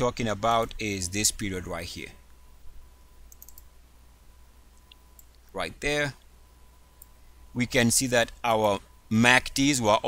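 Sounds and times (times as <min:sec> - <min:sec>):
low electrical hum: 0:00.0 - 0:10.0
computer mouse clicks: 0:03.3 - 0:03.7, 0:04.7 - 0:05.5, 0:07.0 - 0:07.2.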